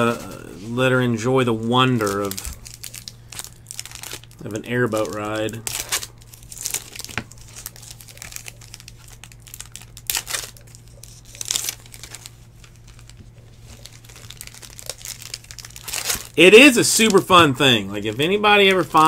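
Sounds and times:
plastic wrappers crinkling and tearing: 0.0s - 19.0s
steady low hum: 0.0s - 19.0s.

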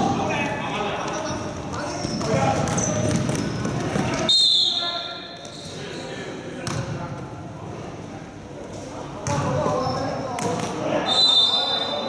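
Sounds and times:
basketball bouncing on floor: 2.0s - 4.1s, 6.6s - 6.9s.

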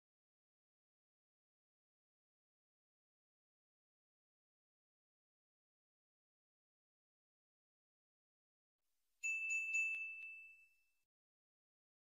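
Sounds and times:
bright bell dinging: 9.2s - 10.9s.

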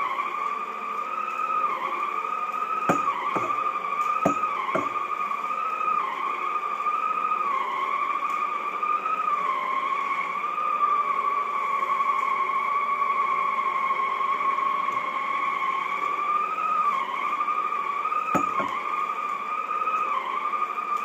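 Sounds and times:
floor cleaner motor whine: 0.0s - 21.0s.

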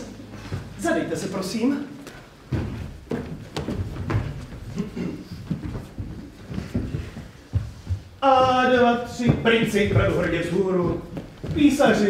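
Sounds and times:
footsteps shuffling on stage: 0.0s - 12.0s.

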